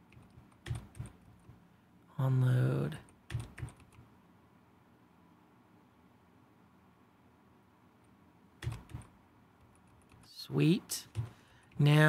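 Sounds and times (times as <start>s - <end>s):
faint room noise: 0.0s - 12.0s
keyboard keystrokes clicking: 0.1s - 1.5s, 3.1s - 4.0s, 8.6s - 10.2s.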